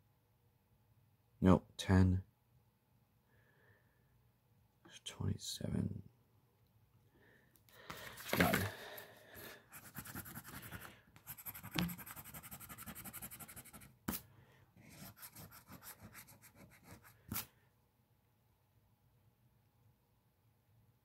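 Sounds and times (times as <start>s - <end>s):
coin scratching a scratch ticket: 9.8s - 14.2s, 14.9s - 17.5s
sharp scrape or tap: 11.3s - 12.2s.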